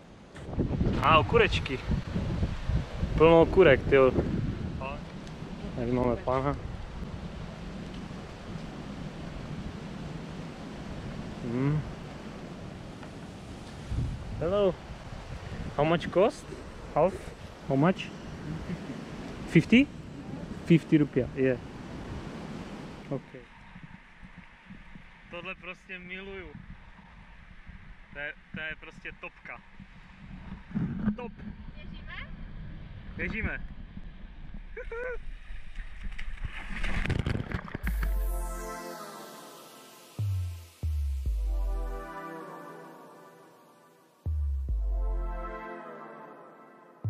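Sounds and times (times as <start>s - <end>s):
wind buffeting microphone: 0.4s - 25.4s, 26.3s - 28.6s, 29.6s - 38.0s.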